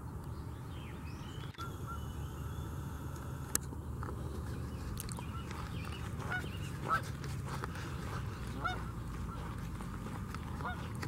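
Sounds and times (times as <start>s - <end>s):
steady low rumble: 0.0s - 11.0s
geese honking: 1.0s - 3.6s, 4.8s - 11.0s.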